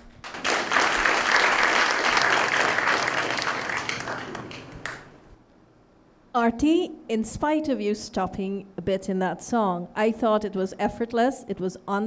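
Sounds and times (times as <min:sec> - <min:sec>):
audience applauding: 0:00.2 - 0:05.3.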